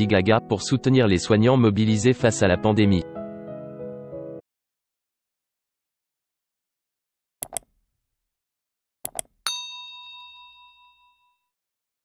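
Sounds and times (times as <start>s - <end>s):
cursor clicks: 7.4s - 7.8s, 9.0s - 9.4s
bright bell ding: 9.5s - 11.5s.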